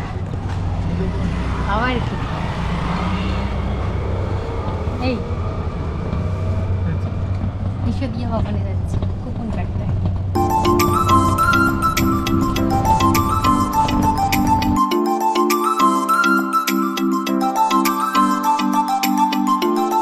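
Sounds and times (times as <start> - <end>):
wind and rolling cart rumble: 0.0 - 14.8.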